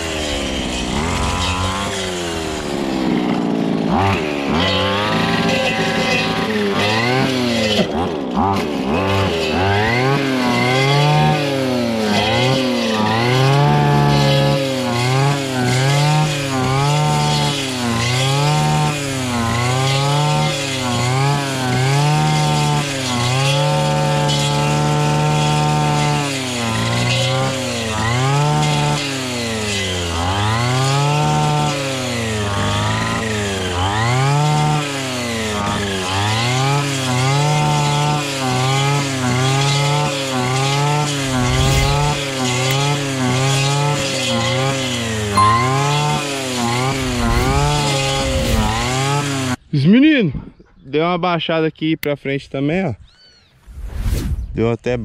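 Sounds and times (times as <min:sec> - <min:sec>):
brushcutter running at high revs: 0:00.0 - 0:49.6.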